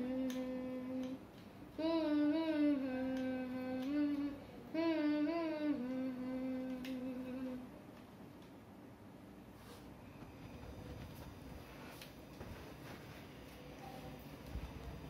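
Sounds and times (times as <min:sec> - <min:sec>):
person humming a tune: 0:00.0 - 0:07.8.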